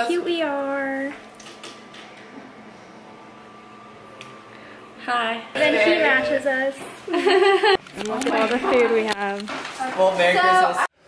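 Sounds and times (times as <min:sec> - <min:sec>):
low even hum: 0:00.0 - 0:09.0.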